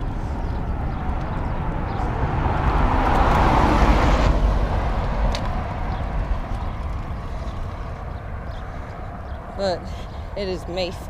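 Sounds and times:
car passing: 0.0s - 11.0s
stroller rolling on concrete: 0.0s - 11.0s.

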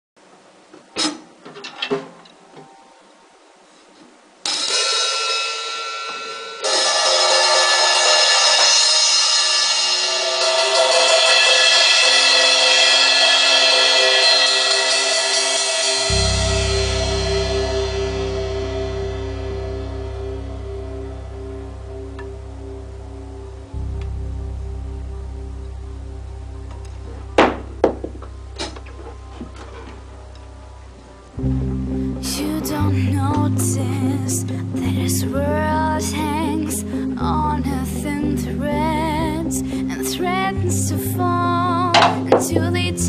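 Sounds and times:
cymbal crashes: 4.5s - 23.6s
low held note: 6.0s - 43.0s
pulsing higher pattern: 6.6s - 43.0s.

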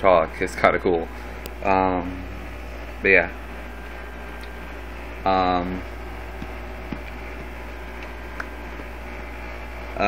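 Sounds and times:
low hum: 1.0s - 10.0s.

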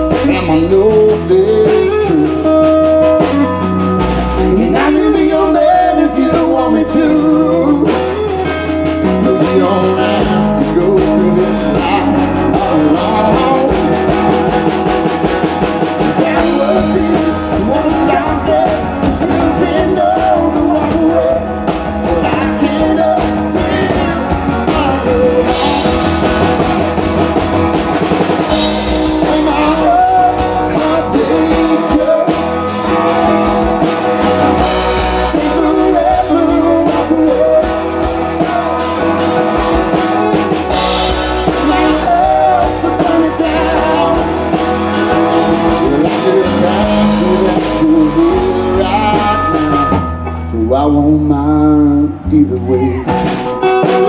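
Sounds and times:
country band playing: 0.0s - 54.0s
male lead vocal: 0.0s - 54.0s.

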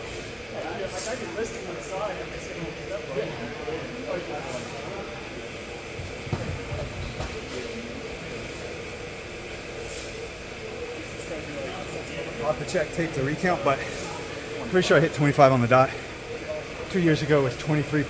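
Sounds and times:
faint people talking: 0.0s - 18.0s
steady hum: 0.0s - 18.0s.

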